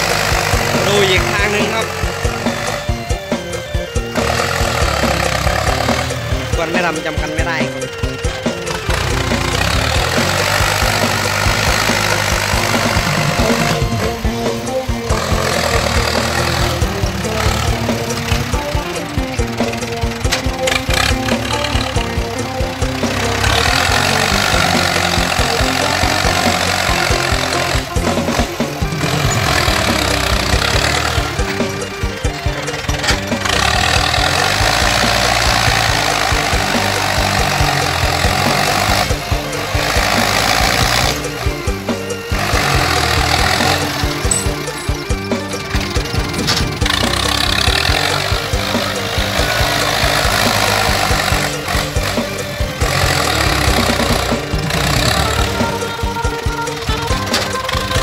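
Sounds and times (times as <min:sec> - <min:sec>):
music playing: 0:00.0 - 0:58.0
tractor diesel engine under load: 0:00.0 - 0:58.0.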